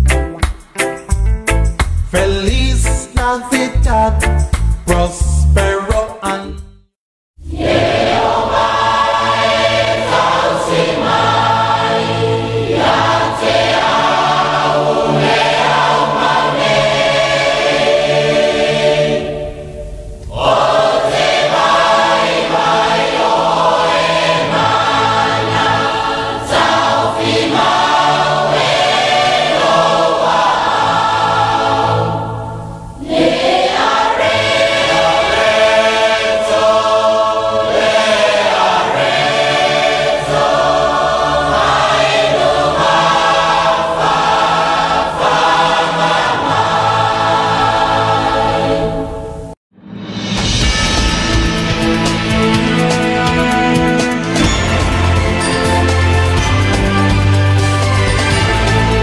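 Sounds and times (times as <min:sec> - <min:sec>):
choir singing with music: 0:00.0 - 0:06.8, 0:07.4 - 0:59.0.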